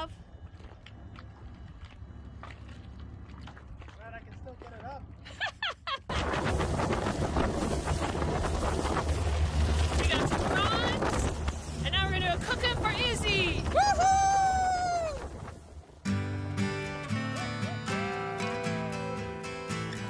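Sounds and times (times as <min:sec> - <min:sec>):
low boat drone: 0:00.0 - 0:20.0
wind buffeting microphone: 0:06.1 - 0:16.0.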